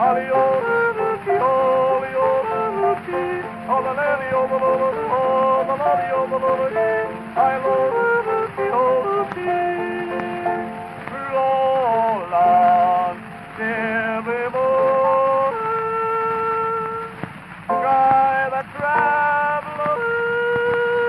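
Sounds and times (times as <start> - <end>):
man yodeling: 0.0 - 21.0
record hiss and crackle: 0.0 - 21.0.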